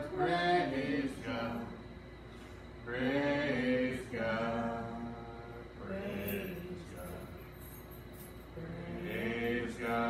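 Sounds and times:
person singing slow worship song: 0:00.0 - 0:10.0.

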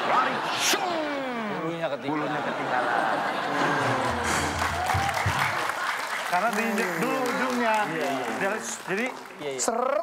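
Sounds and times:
audience laughing: 0:02.1 - 0:06.2
audience applauding: 0:03.5 - 0:10.0.

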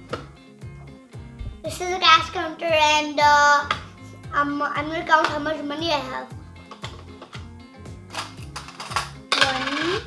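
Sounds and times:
background music: 0:00.0 - 0:10.0
coins clinking into plastic toy: 0:08.1 - 0:10.0.

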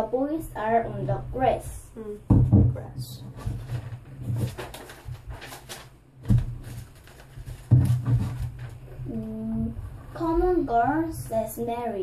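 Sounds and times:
paper sheets rustling: 0:03.2 - 0:09.1.

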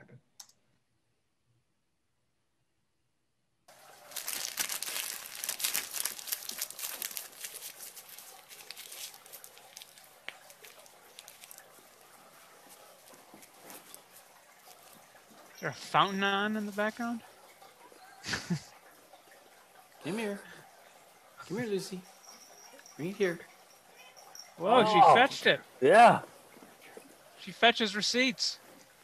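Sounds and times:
paper crumpling by hand: 0:03.8 - 0:12.0
steady background hiss: 0:21.4 - 0:29.0.

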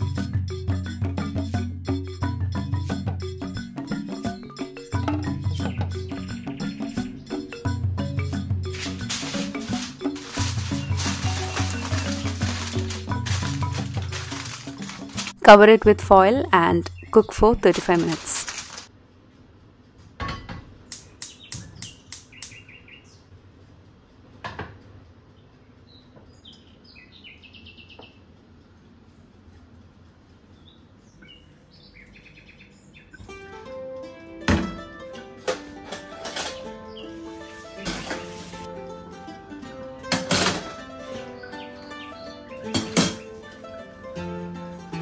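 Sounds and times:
background music: 0:00.0 - 0:18.6, 0:33.2 - 0:45.0
gas hob igniter clicking: 0:20.9 - 0:22.6.

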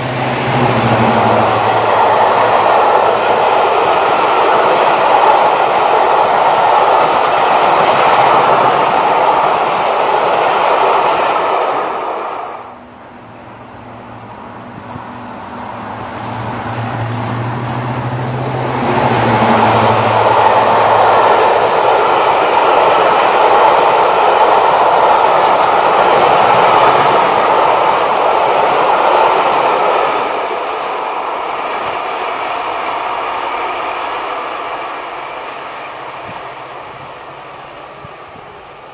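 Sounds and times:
diesel locomotive engine hum: 0:00.0 - 0:38.9
train wheels rumbling on rails: 0:00.0 - 0:38.9.

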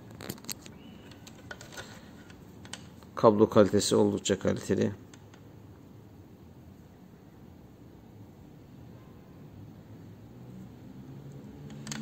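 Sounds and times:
microphone handling clicks and rustles: 0:00.0 - 0:03.2.

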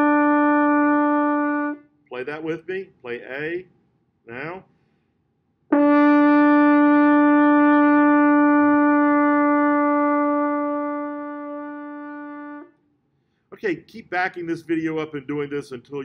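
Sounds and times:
french horn long held note: 0:05.8 - 0:12.7.

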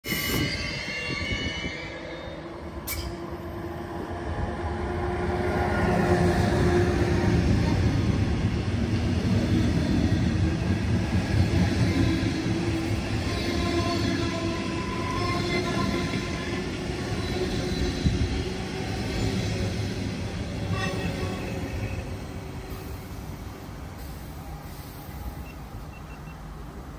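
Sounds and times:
train wheels rumbling on rails: 0:00.0 - 0:26.9.

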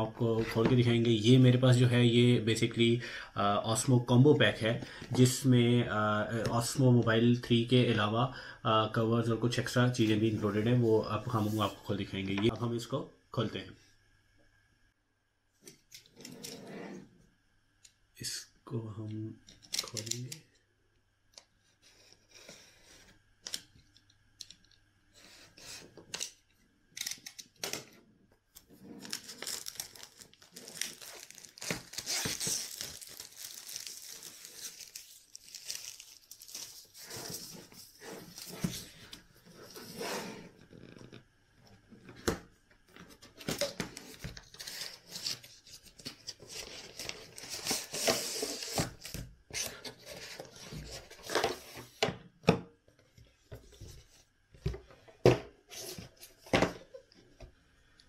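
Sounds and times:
packaging tearing and crinkling: 0:29.0 - 0:37.5.

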